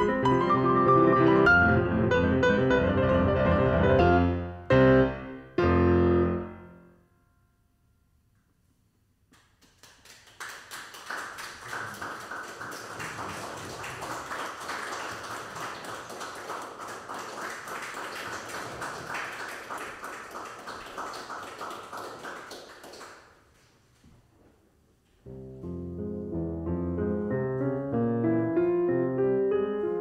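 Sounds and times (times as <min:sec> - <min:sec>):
audience clapping: 0:09.3 - 0:23.8.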